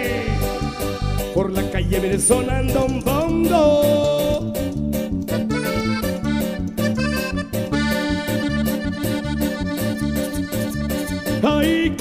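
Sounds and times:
accordion melody: 0:00.0 - 0:12.0
bass: 0:00.0 - 0:12.0.

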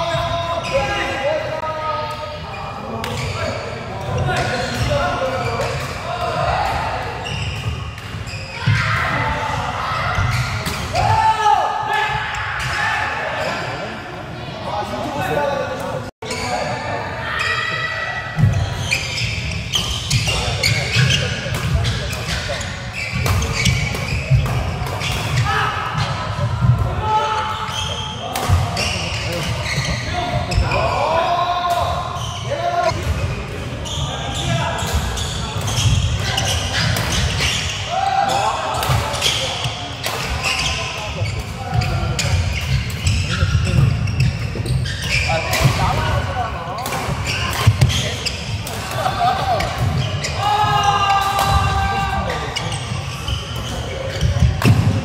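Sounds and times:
players' voices: 0:00.0 - 0:55.0
shoes squeaking on floor: 0:02.6 - 0:05.9, 0:07.2 - 0:09.0, 0:16.2 - 0:16.8, 0:18.4 - 0:25.7, 0:27.5 - 0:30.9, 0:33.8 - 0:38.4, 0:39.0 - 0:51.2, 0:51.8 - 0:55.0.

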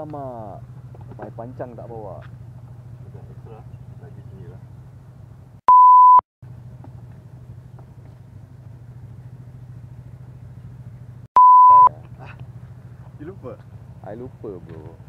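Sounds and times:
censor bleep tones: 0:05.7 - 0:06.2, 0:11.4 - 0:11.9.

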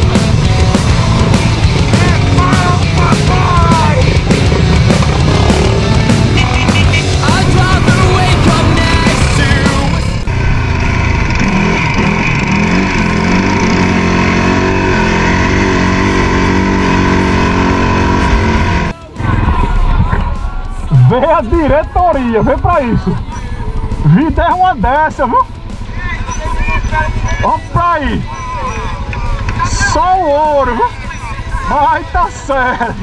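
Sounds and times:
loud rock music: 0:00.0 - 0:33.0
quad bike engines running: 0:00.0 - 0:33.0
voices: 0:01.4 - 0:04.5, 0:06.0 - 0:10.2, 0:18.8 - 0:33.0.

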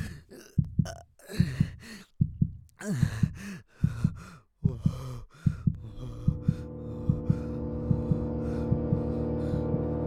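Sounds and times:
heartbeat thumps: 0:00.6 - 0:10.0
heavy breathing: 0:01.2 - 0:10.0
low drone: 0:05.8 - 0:10.0.

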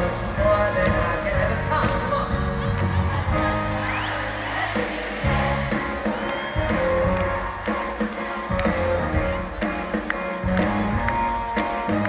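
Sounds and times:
deep bass line: 0:00.0 - 0:04.1
live band music: 0:00.0 - 0:12.0.

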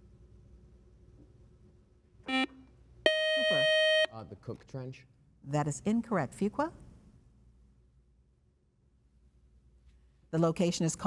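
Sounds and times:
short electronic beep: 0:03.1 - 0:04.1.

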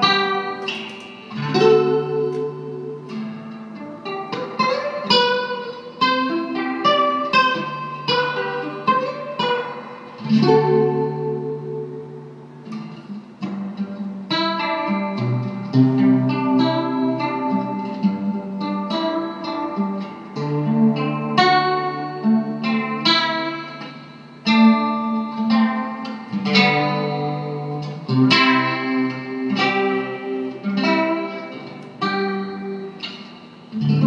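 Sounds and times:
classical guitar with chorus effect: 0:00.0 - 0:34.0.

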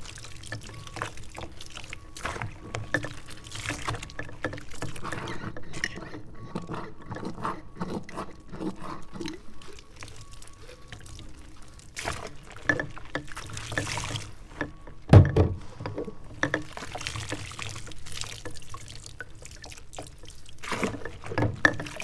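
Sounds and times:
water pouring and splashing: 0:00.0 - 0:06.0, 0:09.0 - 0:22.0.

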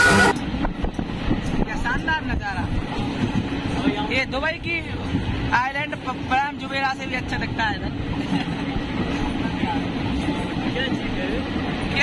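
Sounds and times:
train rumble from inside carriage: 0:00.0 - 0:12.0.

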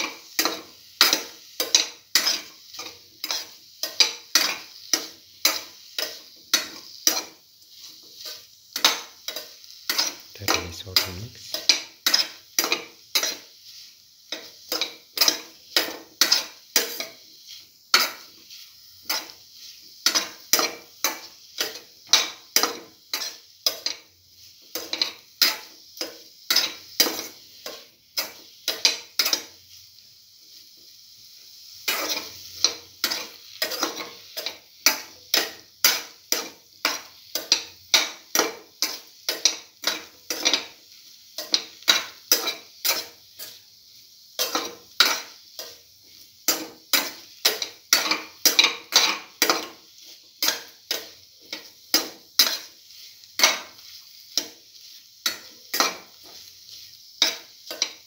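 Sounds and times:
food sauteing in a pan: 0:00.0 - 0:58.0
spatula stirring food in a pan: 0:00.0 - 0:58.0.

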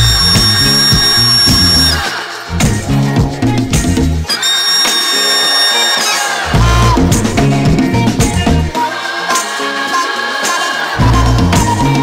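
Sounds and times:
high held tone: 0:00.0 - 0:02.0, 0:04.3 - 0:06.6.

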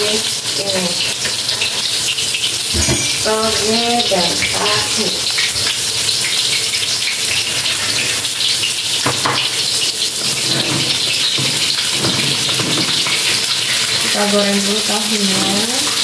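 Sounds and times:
oil sizzling in a pan: 0:00.0 - 0:16.0.

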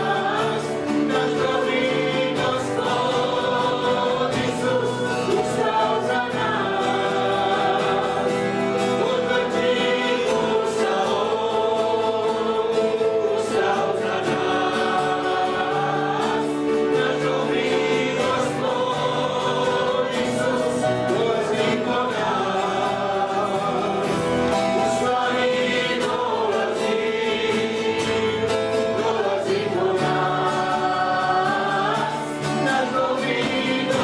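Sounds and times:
group singing worship song: 0:00.0 - 0:34.0
strummed acoustic guitars: 0:00.0 - 0:34.0.

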